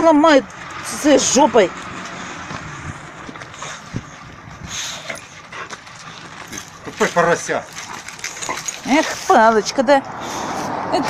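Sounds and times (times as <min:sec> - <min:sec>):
dog breathing and snuffling: 0:02.0 - 0:10.9.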